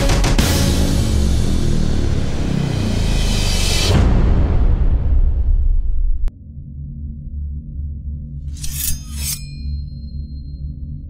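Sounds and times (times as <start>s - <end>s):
low droning music: 0.0s - 11.0s
bright swishes: 8.6s - 9.9s.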